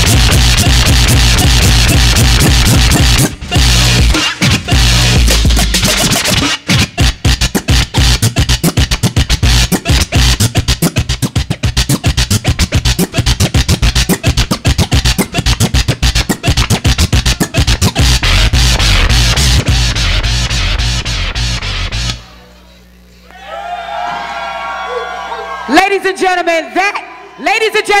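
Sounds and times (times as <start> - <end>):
hip-hop beat: 0.0 - 22.3
turntable scratching: 0.0 - 23.1.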